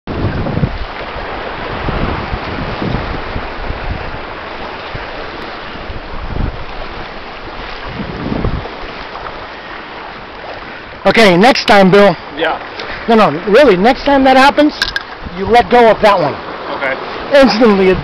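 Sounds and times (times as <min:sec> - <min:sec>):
wind buffeting the microphone: 0:00.1 - 0:11.1, 0:11.8 - 0:18.0
water rushing past a hull: 0:00.1 - 0:18.0.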